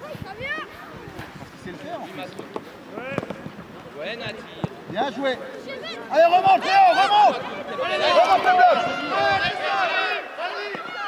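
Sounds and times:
people shouting: 5.8 - 11.0.

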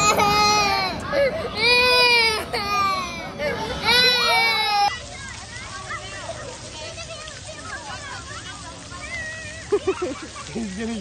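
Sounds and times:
toddler crying: 0.0 - 5.0.

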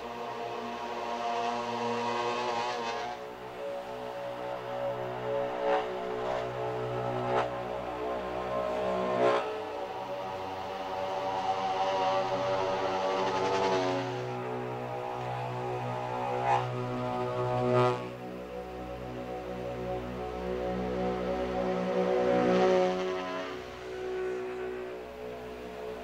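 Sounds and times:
ambient drone music: 0.0 - 26.0.

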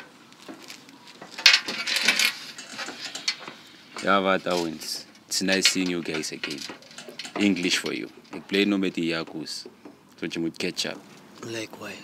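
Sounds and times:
small objects clinking and rattling: 1.4 - 8.5.

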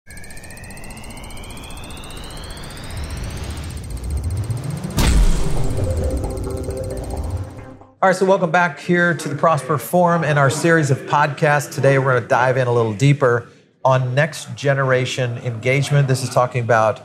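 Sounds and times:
low rumble: 0.1 - 7.8
deep tones sweeping down: 0.1 - 8.0
rising synth sweep: 0.1 - 8.0
loud impact hit: 3.8 - 7.8.

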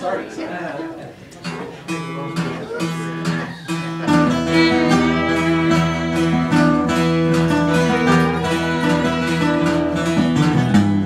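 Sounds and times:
acoustic guitars strumming: 1.4 - 11.0
fiddle bowing long notes: 3.9 - 10.6.

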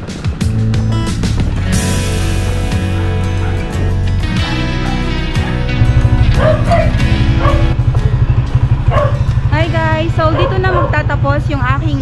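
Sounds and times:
background music with low beat: 0.0 - 12.0
wavering vocal line: 3.4 - 7.8.

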